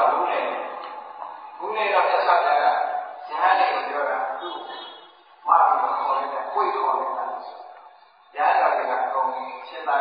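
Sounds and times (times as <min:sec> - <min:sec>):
man delivering a sermon: 0:00.0 - 0:10.0.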